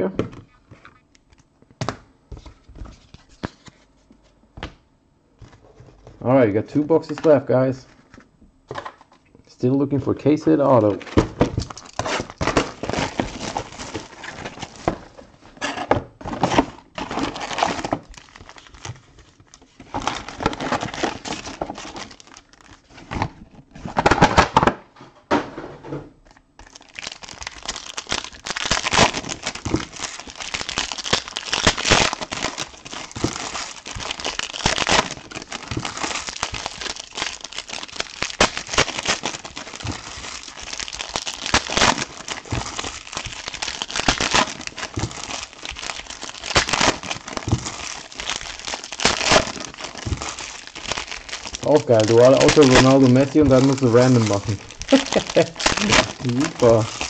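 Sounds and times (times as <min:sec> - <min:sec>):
foil wrappers crinkling and tearing: 0:10.5 - 0:15.2, 0:16.2 - 0:24.5, 0:26.3 - 0:57.0.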